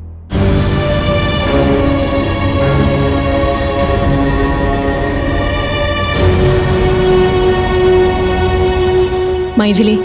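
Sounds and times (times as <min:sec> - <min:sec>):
dramatic background score: 0:00.0 - 0:10.0.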